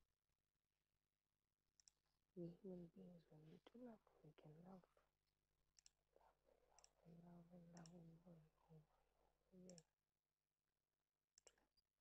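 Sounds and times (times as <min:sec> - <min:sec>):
faint sharp clicks: 0:05.8 - 0:06.0, 0:11.4 - 0:11.6.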